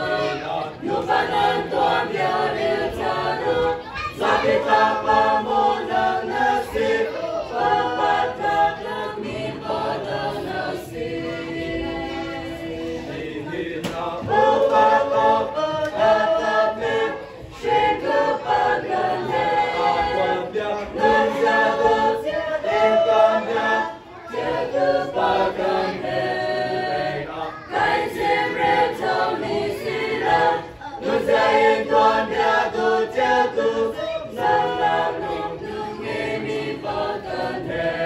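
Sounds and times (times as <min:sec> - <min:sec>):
mixed choir singing a hymn: 0:00.0 - 0:38.0.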